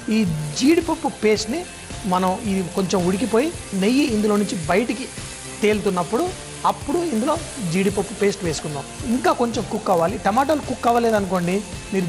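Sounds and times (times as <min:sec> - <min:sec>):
food sizzling in a pan: 0:00.0 - 0:12.0
person talking: 0:00.1 - 0:12.0.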